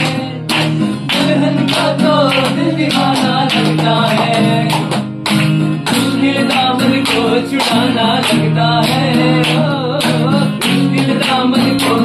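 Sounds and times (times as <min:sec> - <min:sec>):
man singing: 0:00.0 - 0:05.2, 0:05.8 - 0:12.0
acoustic guitar strumming: 0:00.0 - 0:12.0
hands clapping: 0:00.0 - 0:12.0.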